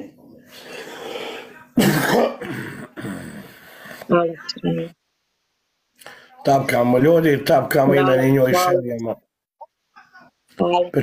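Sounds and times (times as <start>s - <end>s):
man coughing: 1.8s - 3.2s.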